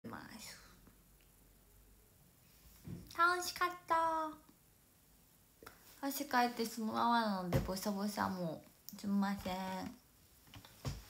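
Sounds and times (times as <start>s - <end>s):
faint room hum: 0.0s - 11.0s
woman whispering: 0.1s - 0.8s.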